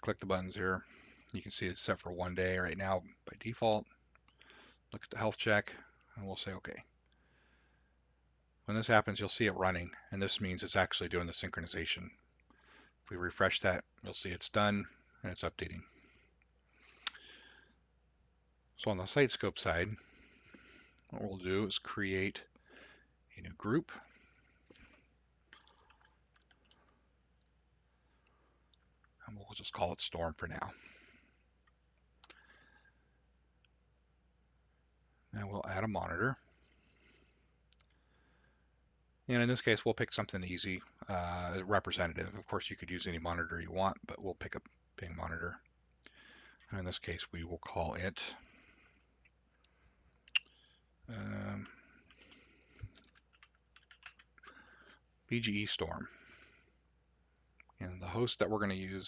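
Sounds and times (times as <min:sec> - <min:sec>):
low steady hum: 0:00.0 - 0:59.0
keyboard typing: 0:25.6 - 0:27.0, 0:52.0 - 0:54.4
keyboard keystrokes: 0:53.0 - 0:54.2.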